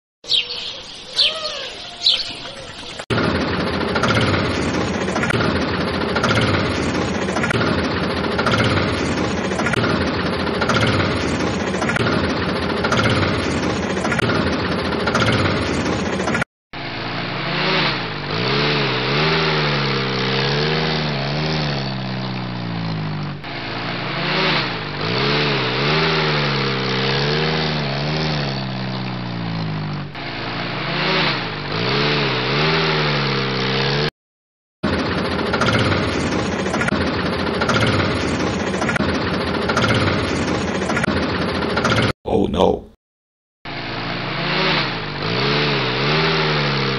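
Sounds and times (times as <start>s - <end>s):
rough running tractor engine: 2.8s - 34.0s, 34.8s - 42.1s
engine revving: 3.0s - 34.1s, 34.8s - 42.1s, 43.7s - 46.9s.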